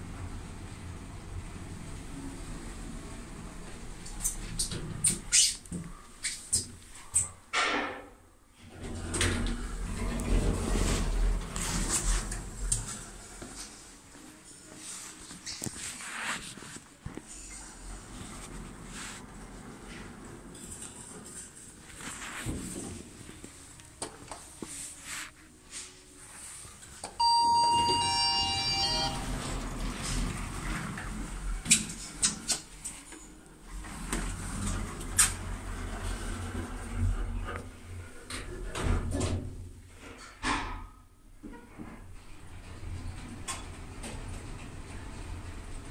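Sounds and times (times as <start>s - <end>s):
lift doors sliding: 8.6s - 13.4s, 27.2s - 32.7s, 33.7s - 39.5s, 41.6s - 45.9s
electronic chime: 27.2s - 29.4s.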